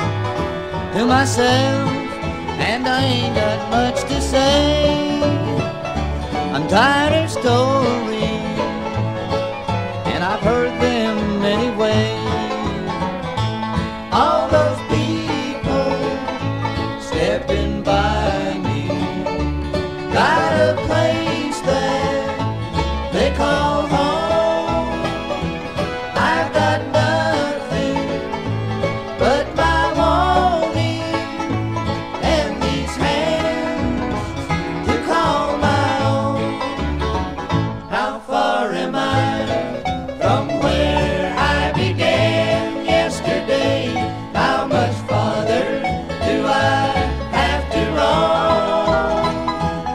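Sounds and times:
banjo: 0.0s - 49.9s
guitar: 0.0s - 49.9s
plucked bass line: 0.0s - 49.9s
sliding lead line: 0.0s - 49.9s.

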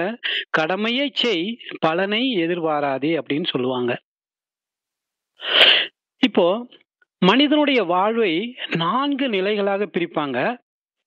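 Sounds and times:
short burst of breath: 5.4s - 6.0s.

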